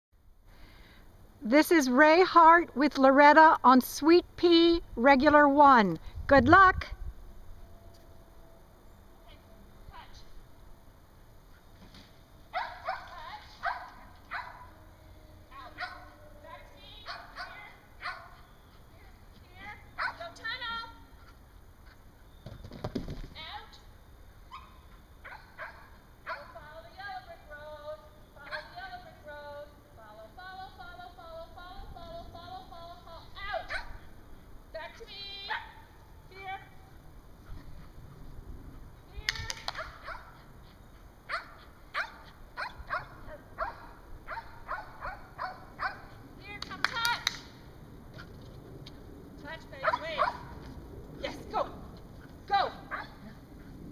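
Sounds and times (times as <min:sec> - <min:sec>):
dog barking: 0:12.5 - 0:14.7, 0:15.8 - 0:16.1, 0:17.0 - 0:18.4, 0:20.0 - 0:20.3, 0:24.5 - 0:26.5, 0:33.7 - 0:34.0, 0:39.7 - 0:40.4, 0:41.3 - 0:46.1, 0:49.8 - 0:50.5, 0:52.9 - 0:53.2.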